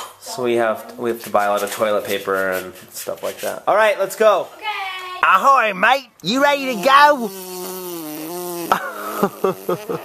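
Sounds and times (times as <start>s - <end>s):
toddler blowing a raspberry: 7.3s - 10.0s.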